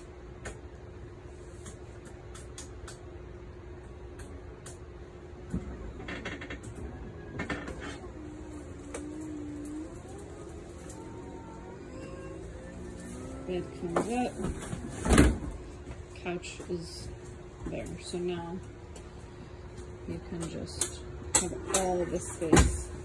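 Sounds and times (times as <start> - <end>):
motor whine: 6.6 - 17.6.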